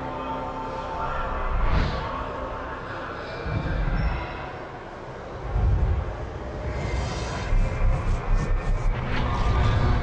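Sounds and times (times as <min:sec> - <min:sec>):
deep noisy rumble: 0:01.1 - 0:10.0.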